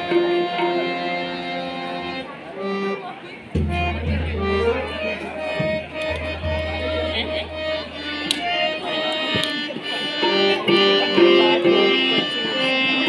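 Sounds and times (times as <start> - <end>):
harmonium holding long notes: 0.0 - 13.0
hand drum strokes: 3.5 - 9.8.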